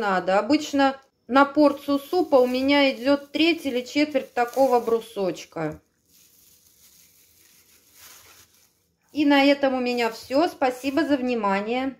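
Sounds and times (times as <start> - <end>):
plastic bag rustling: 1.7 - 11.3.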